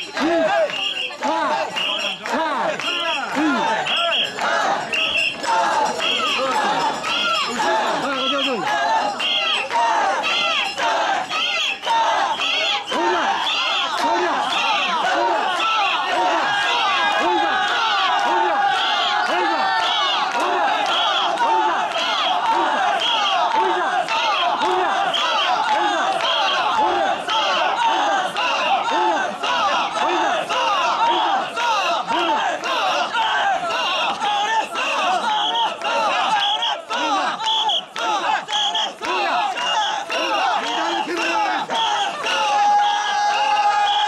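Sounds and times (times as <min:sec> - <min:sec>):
crowd shouting a rhythmic chant: 0:00.0 - 0:44.0.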